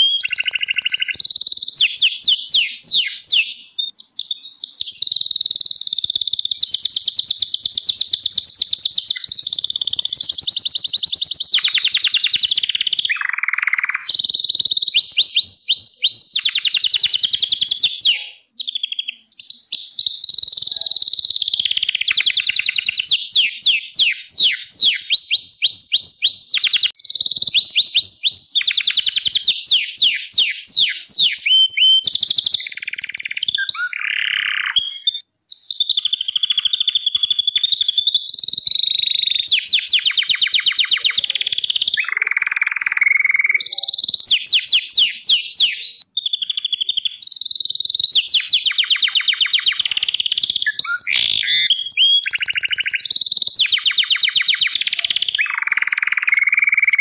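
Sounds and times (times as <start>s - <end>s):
canary singing trills: 0.0s - 57.0s.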